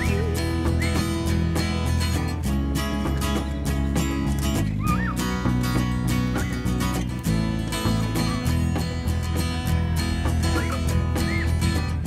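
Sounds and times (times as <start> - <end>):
strummed acoustic guitar music: 0.0 - 12.0.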